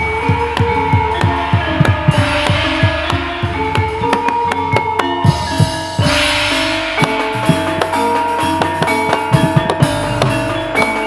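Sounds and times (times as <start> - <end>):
drum beating steadily: 0.0 - 11.0
ringing metallophone tones: 0.0 - 11.0.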